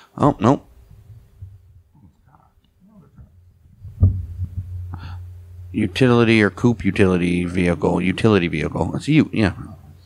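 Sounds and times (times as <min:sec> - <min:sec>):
low electrical hum: 0:00.0 - 0:10.0
short low-pitched thump: 0:03.0 - 0:07.2.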